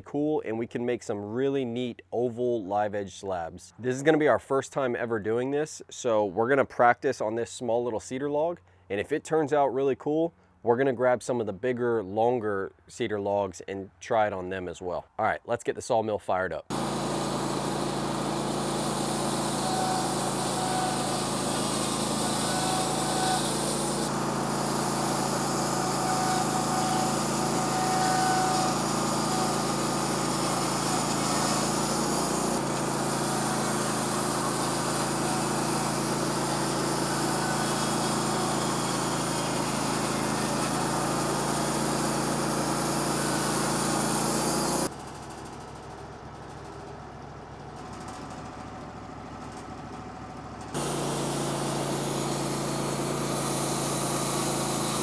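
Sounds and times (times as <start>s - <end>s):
band saw cutting log: 16.7s - 44.9s, 50.7s - 55.0s
sawmill engine idling: 16.7s - 55.0s.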